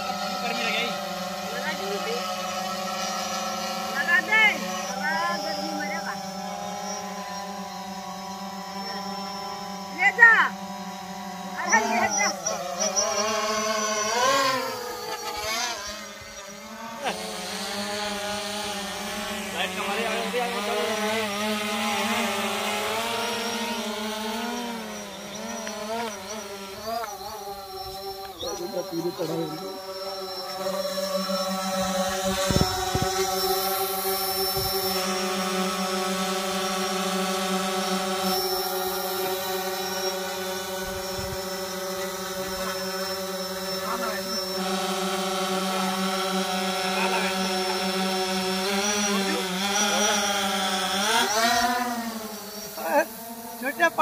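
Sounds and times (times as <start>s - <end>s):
drone propellers buzzing: 0.0s - 54.0s.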